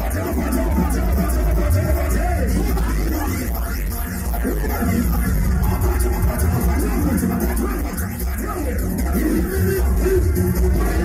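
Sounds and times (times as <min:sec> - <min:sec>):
electronic dance music with heavy bass: 0:00.0 - 0:11.0.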